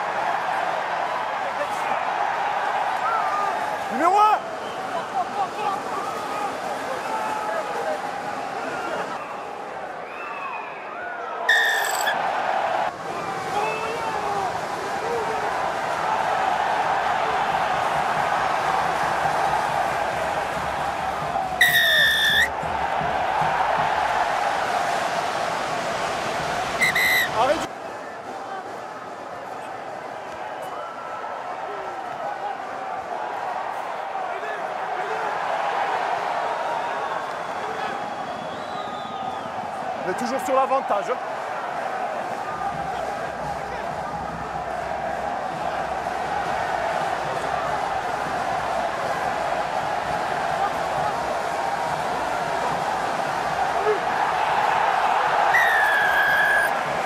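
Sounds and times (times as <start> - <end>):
stadium crowd noise: 0.0 - 57.0
referee's whistle blasts: 11.5 - 12.2, 21.6 - 22.5, 26.8 - 27.4
players shouting: 11.5 - 25.4, 39.1 - 57.0.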